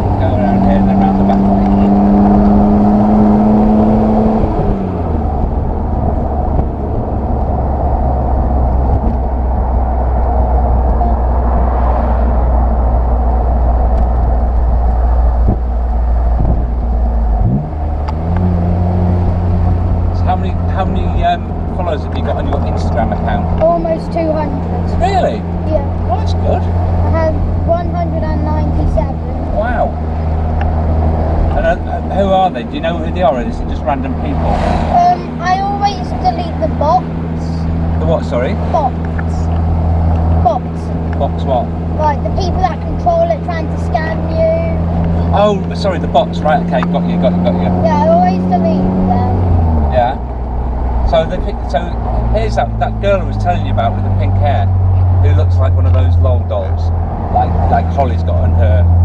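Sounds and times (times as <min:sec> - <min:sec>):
voices: 0:00.0 - 0:02.5, 0:10.2 - 0:12.8, 0:20.2 - 0:30.0, 0:31.5 - 0:39.6, 0:40.2 - 0:50.4, 0:51.0 - 0:59.0
car engine running: 0:00.0 - 0:59.0.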